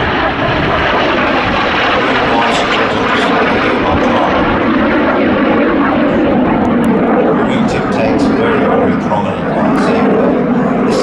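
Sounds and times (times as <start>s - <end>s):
jet aircraft flying past: 0.0s - 11.0s.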